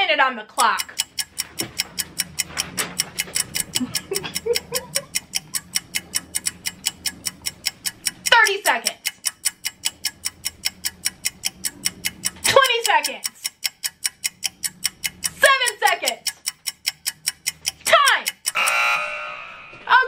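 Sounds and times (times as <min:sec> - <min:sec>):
countdown clock ticking: 0:00.4 - 0:20.0.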